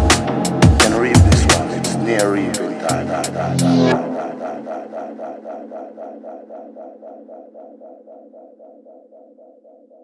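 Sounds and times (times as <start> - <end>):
pulsing synthesizer pattern: 0.0 - 10.0.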